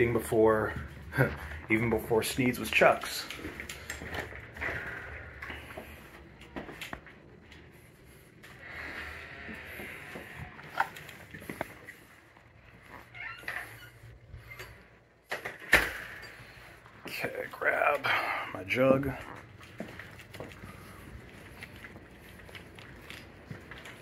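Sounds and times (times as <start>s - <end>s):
footsteps: 0.0s - 15.0s, 16.0s - 24.0s
door opening: 8.5s - 11.7s, 12.9s - 16.6s.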